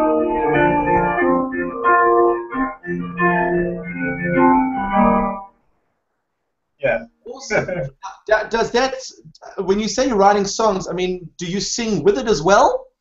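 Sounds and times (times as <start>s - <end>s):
electronic keyboard chords: 0.0s - 5.7s
person laughing: 7.5s - 8.0s.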